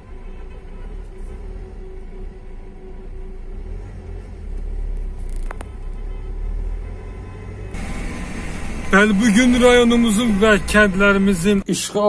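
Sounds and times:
car driving rumble: 0.0 - 11.7
traffic hiss: 7.7 - 11.8.

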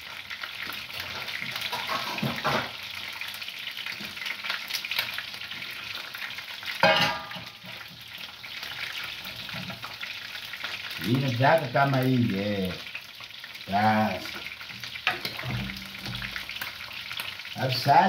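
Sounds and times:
food sizzling in a pan: 0.0 - 18.0
glass bowl clink: 6.8 - 7.5.

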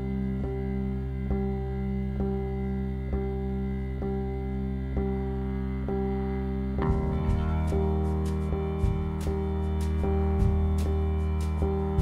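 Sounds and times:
electric guitar and bass chords: 0.0 - 12.0.

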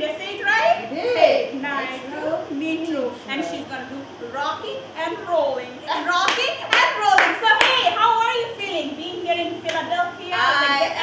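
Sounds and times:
excited talking: 0.0 - 11.0
sharp hand claps: 6.2 - 7.9, 9.7 - 9.9.

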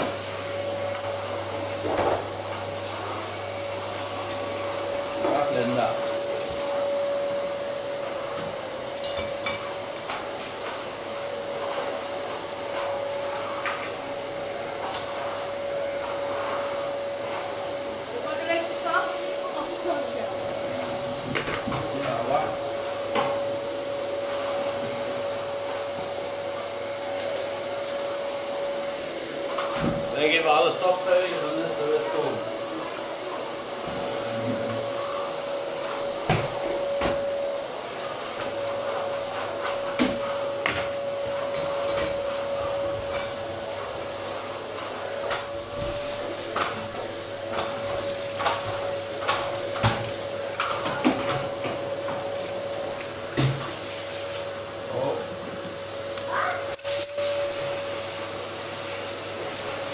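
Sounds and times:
vacuum cleaner running: 0.0 - 59.9.

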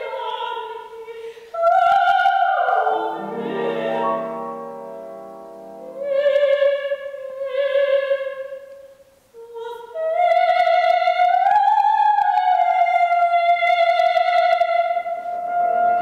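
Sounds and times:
soprano singing opera: 0.0 - 16.0
singer breathing: 1.2 - 1.6
piano chords: 2.3 - 7.8.

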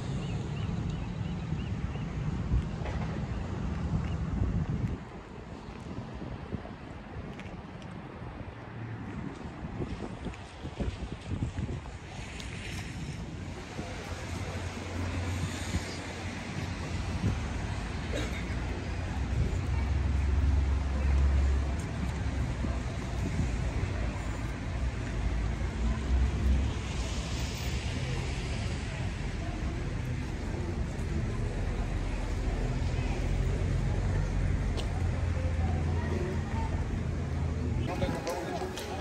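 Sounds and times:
outdoor background noise: 0.0 - 39.0
wind blowing on microphone: 2.3 - 27.2.

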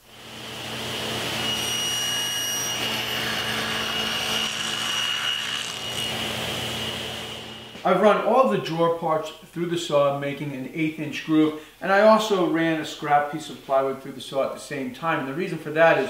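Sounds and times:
table saw whining: 0.0 - 7.9.

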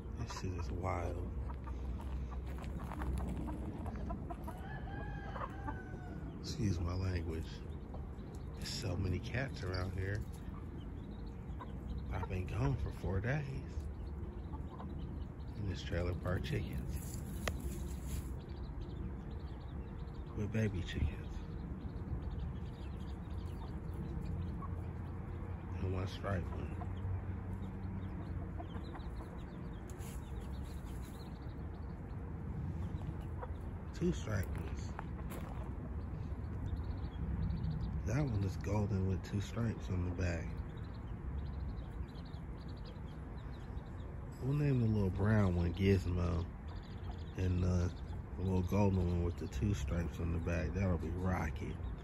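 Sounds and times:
hen clucking: 0.0 - 18.5, 28.0 - 31.7, 32.8 - 36.7
chicks peeping: 0.0 - 52.0
drawn-out chicken call: 1.5 - 6.5.

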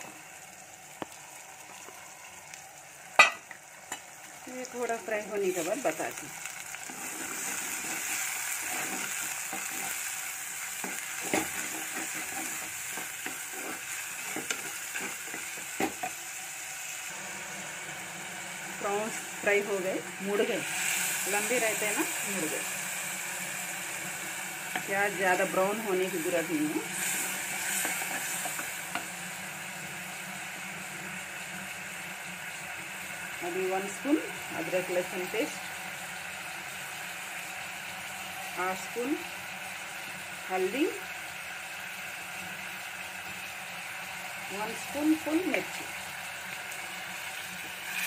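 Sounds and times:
prawns sizzling in oil: 0.0 - 48.0
spatula scraping and knocking pot: 10.8 - 16.1.

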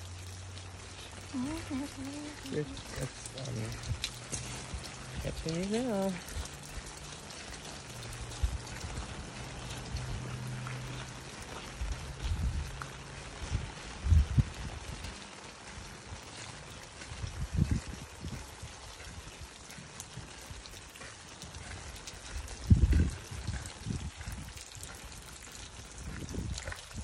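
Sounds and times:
light rain pattering: 0.0 - 27.0.

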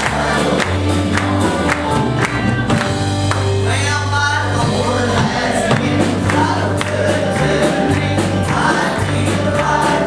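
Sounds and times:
congregation singing: 0.0 - 10.0
instrumental accompaniment with beat: 0.0 - 10.0
walking bass line: 0.0 - 10.0.

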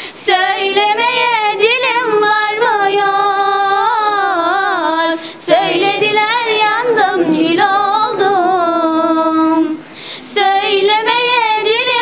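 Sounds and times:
girl singing unaccompanied: 0.0 - 12.0
quick breath: 5.2 - 5.4, 9.8 - 10.3.

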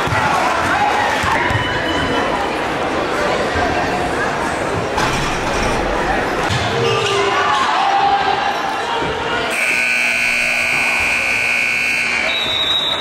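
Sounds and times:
voices in a gym: 0.0 - 13.0
scoreboard horn buzz: 9.5 - 12.5.

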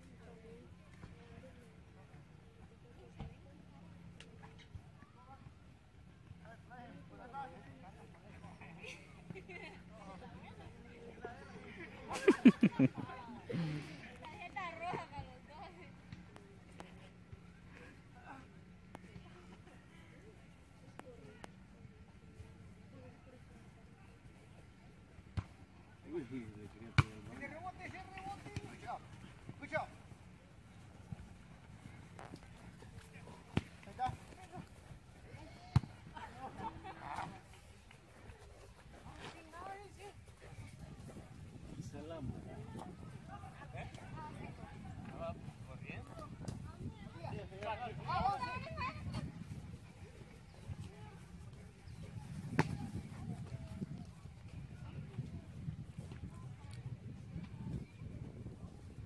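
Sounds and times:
faint distant voices: 0.0 - 59.0
ball kick thuds: 26.9 - 27.4, 33.0 - 34.8, 35.6 - 36.0, 52.3 - 53.6
wind rumble on microphone: 34.6 - 59.0.

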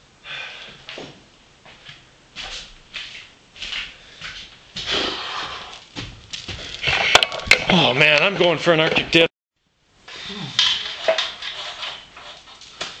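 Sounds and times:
person breathing out heavily: 0.2 - 0.9, 4.8 - 5.8.

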